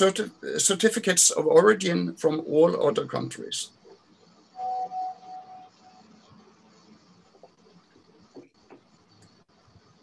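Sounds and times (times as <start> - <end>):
brief ringing tone: 4.6 - 6.0.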